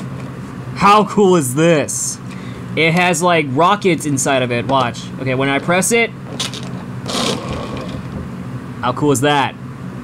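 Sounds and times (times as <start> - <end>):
toy car rattling whir: 6.3 - 8.1.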